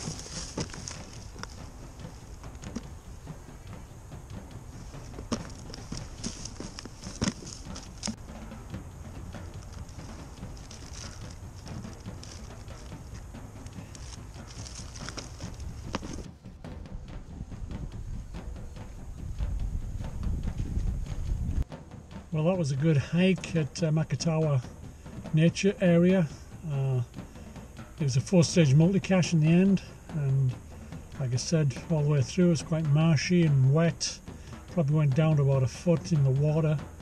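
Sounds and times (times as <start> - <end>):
low rumble: 0.0 - 22.3.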